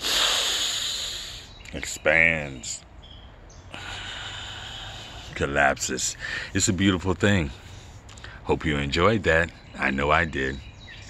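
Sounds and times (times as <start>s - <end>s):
man breathing deeply: 0.0s - 1.6s, 3.7s - 5.5s, 6.1s - 6.6s, 7.6s - 8.4s.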